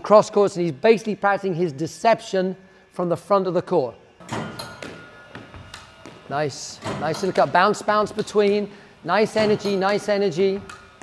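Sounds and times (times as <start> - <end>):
squash ball knocks: 4.2 - 7.1.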